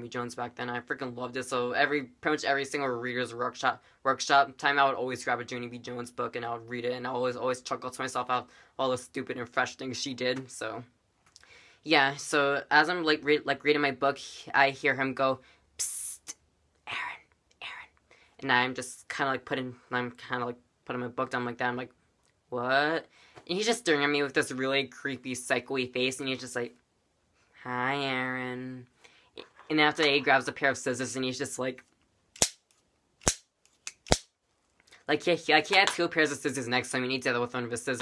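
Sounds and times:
boy whispering: 16.2s - 18.0s
scissors snipping: 32.4s - 34.3s.

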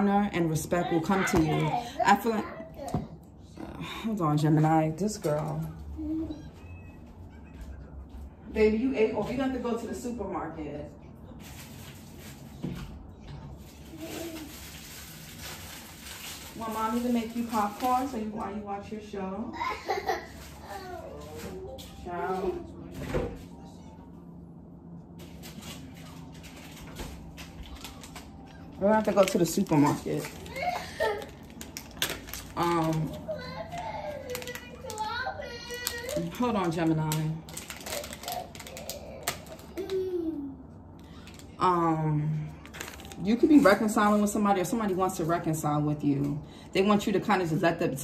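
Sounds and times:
young child's high-pitched voice: 0.9s - 3.2s, 33.2s - 36.2s.

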